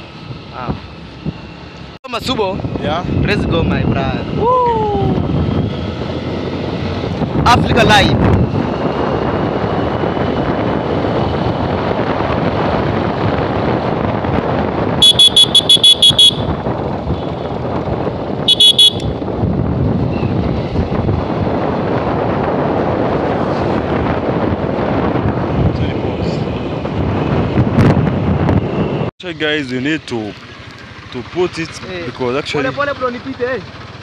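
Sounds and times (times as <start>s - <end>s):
wind on microphone: 2.2s - 29.1s
motorcycle engine running: 4.1s - 34.0s
motorcycle horn toots: 15.0s - 17.6s, 18.4s - 19.2s.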